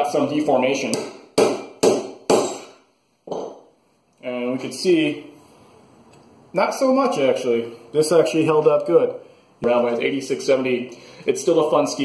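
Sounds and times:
metal strikes on knife spine: 0.9 - 2.8.

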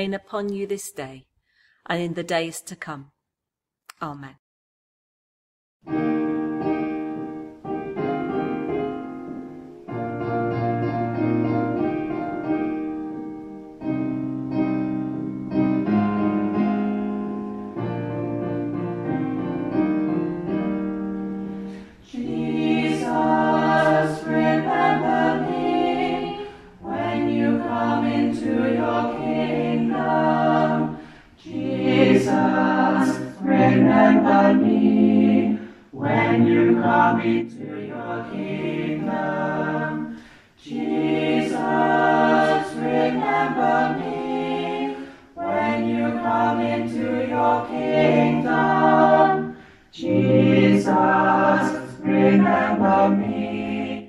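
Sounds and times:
group of voices singing: 21.6 - 54.0.

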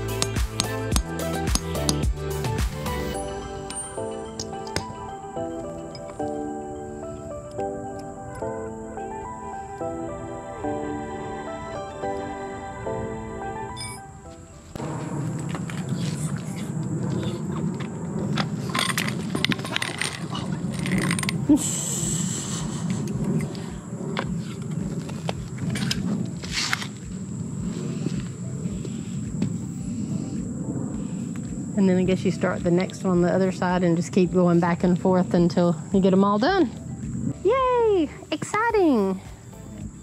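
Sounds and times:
music: 0.0 - 16.6, 18.8 - 40.0
steady low rumble: 0.0 - 40.0
metal clinks and knocks: 18.4 - 21.5.

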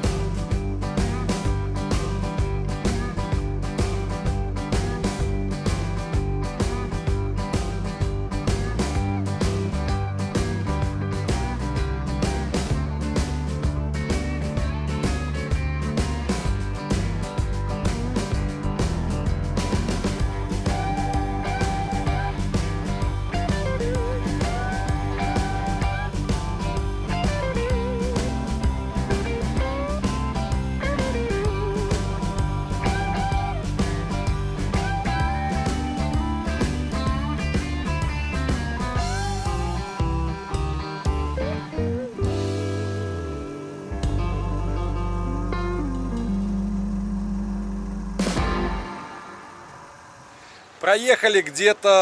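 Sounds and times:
steady drum beat: 0.0 - 41.5, 48.2 - 49.6
rock guitar notes: 0.0 - 50.8.

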